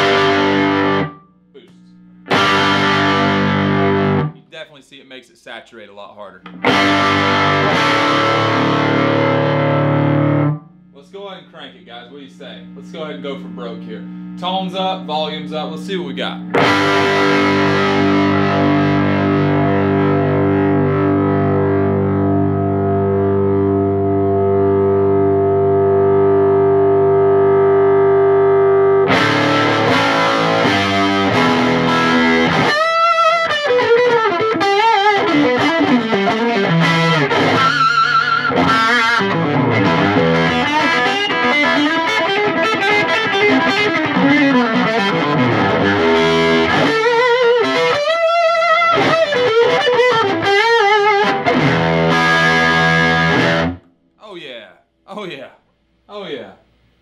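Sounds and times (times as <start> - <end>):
overdriven electric guitar: 0.0 - 1.4, 2.0 - 4.4, 6.4 - 10.8, 16.4 - 54.0.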